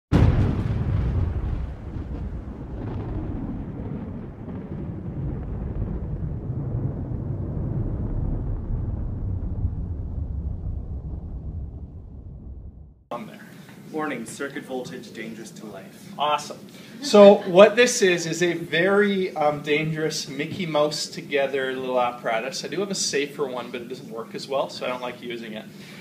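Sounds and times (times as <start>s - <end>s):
loud boom: 0.1s - 13.1s
long low rumble: 0.6s - 13.1s.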